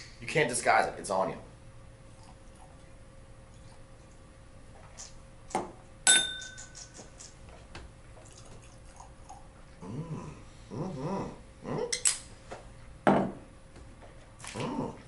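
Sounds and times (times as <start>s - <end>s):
glassware clinking: 6.1s - 6.8s.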